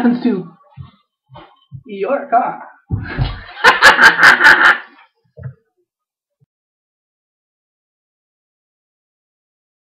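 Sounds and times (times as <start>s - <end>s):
soft low thump: 2.9s - 3.5s
man laughing loudly: 3.2s - 5.0s.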